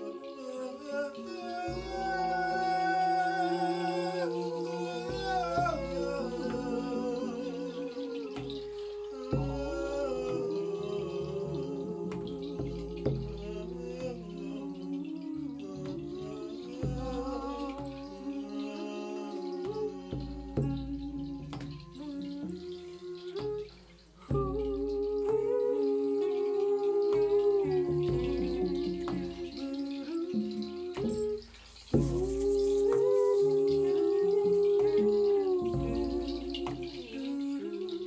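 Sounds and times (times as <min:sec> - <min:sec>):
low drum beats: 0:04.5 - 0:18.4, 0:19.6 - 0:25.9, 0:26.9 - 0:37.4.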